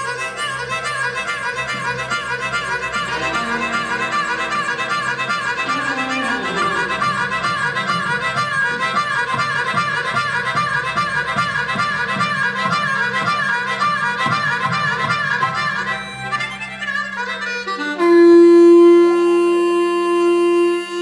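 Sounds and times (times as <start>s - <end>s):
blues harmonica riff: 0.0s - 21.0s.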